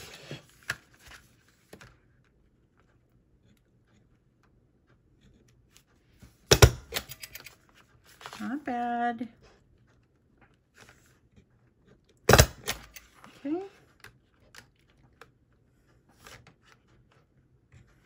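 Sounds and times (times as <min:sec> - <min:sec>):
paper rustling: 0:00.0 - 0:02.1, 0:07.6 - 0:08.6.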